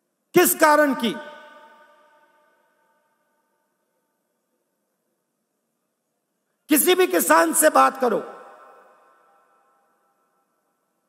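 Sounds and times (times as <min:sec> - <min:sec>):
echo: 0:00.0 - 0:11.0.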